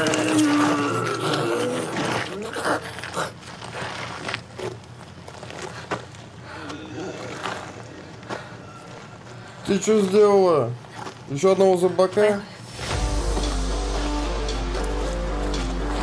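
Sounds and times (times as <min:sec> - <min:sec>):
woman snarling and growling: 0:00.0 - 0:03.4.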